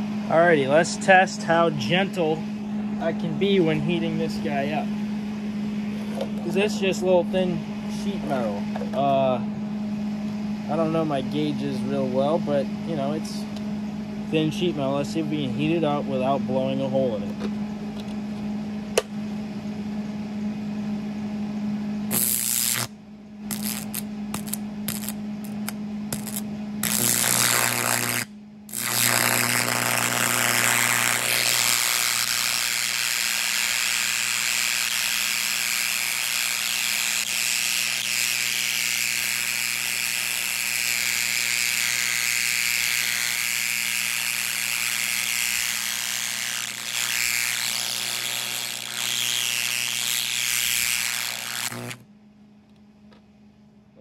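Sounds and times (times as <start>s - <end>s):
carbon arc crackling and buzzing: 0.0s - 15.9s, 22.0s - 52.1s
electrical hum: 0.0s - 54.0s.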